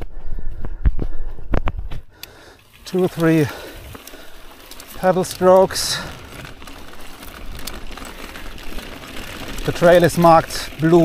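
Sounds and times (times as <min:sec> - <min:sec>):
bike tyres on dirt trail: 0:00.0 - 0:11.0
faint clicks: 0:01.5 - 0:03.3.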